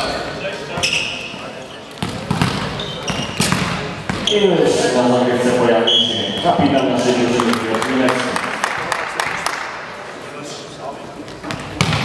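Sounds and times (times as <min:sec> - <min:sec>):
crowd chatter: 0:00.0 - 0:12.0
volleyball thumps echoing: 0:02.0 - 0:04.3, 0:11.3 - 0:12.0.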